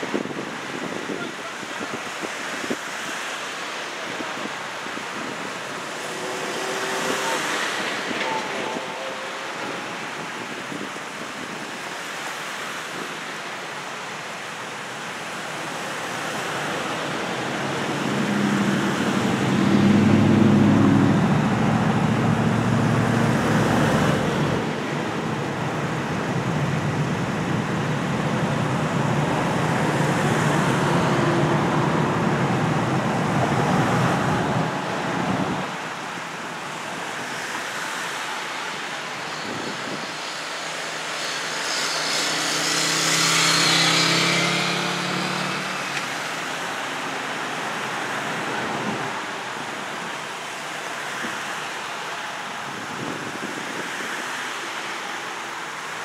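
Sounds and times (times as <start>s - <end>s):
cars driving by: 0.0s - 56.0s
vehicle tyre hiss: 36.6s - 55.2s.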